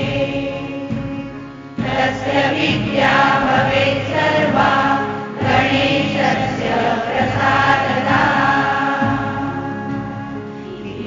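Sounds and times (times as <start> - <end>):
group chanting: 0.0 - 1.0, 1.8 - 11.0.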